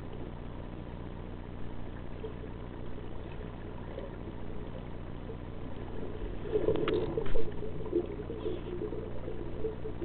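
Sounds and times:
underwater low hum and rumble: 0.0 - 10.0.

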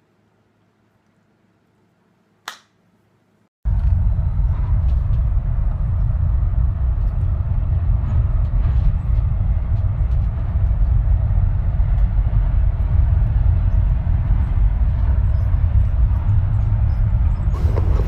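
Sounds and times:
low bass rumble: 3.7 - 18.0.

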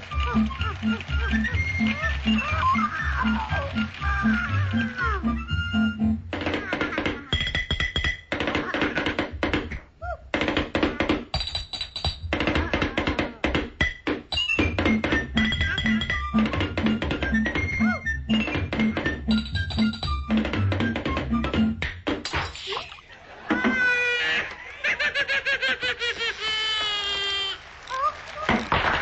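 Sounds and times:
dance-band cartoon music: 0.0 - 22.4
fast drumming with rolls: 10.3 - 22.1.

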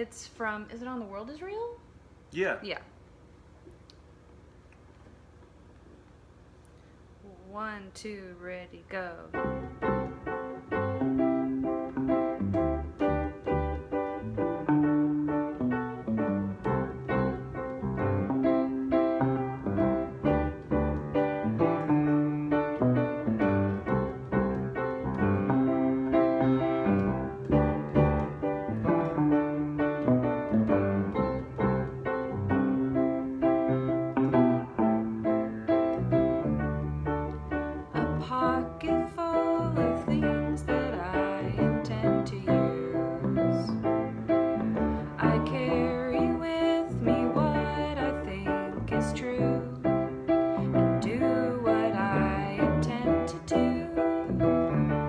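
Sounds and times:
piano: 8.3 - 55.0
low bass line: 9.4 - 39.0
electric guitar: 9.4 - 55.0.

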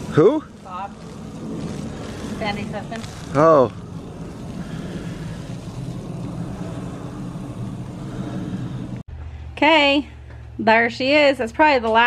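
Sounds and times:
water spraying from hose: 0.0 - 9.0
low rumble: 0.0 - 11.2.

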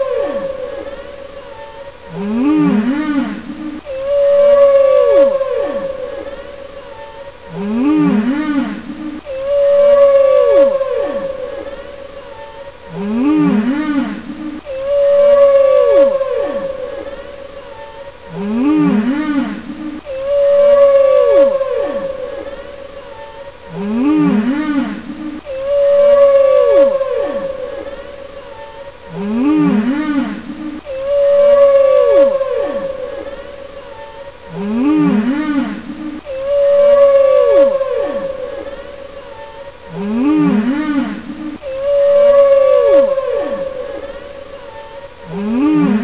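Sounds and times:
whale-song-like calls: 0.0 - 46.0.

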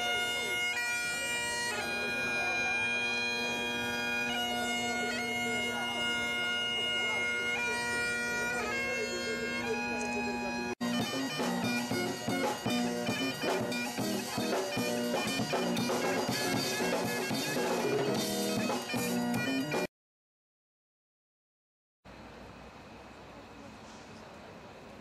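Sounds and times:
bagpipes playing a tune: 0.0 - 19.9
drum kit beat: 10.8 - 19.9
electric guitar: 10.8 - 19.9.

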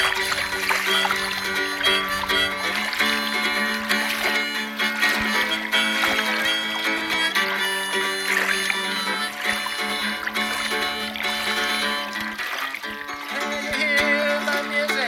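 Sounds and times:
harmonica playing blues: 0.0 - 15.0
strummed guitalele: 0.0 - 15.0.

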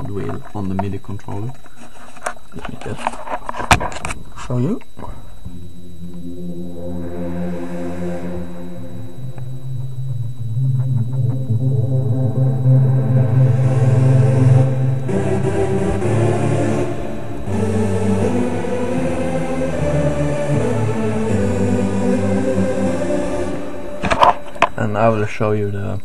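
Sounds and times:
synthesizer lead chords: 5.4 - 24.7.

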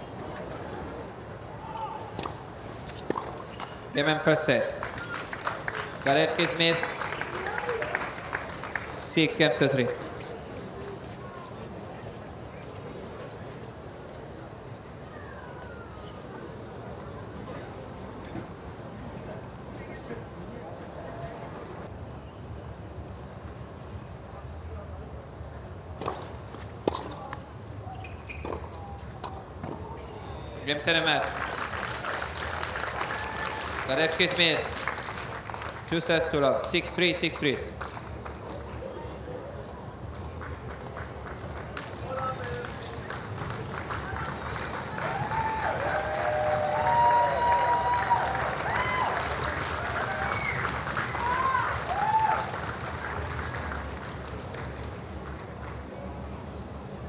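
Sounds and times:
crowd murmur: 0.0 - 4.0, 4.7 - 35.9, 37.6 - 57.0
court ambience: 2.3 - 14.3, 30.5 - 38.8
tennis ball bouncing on court: 26.0 - 27.4.

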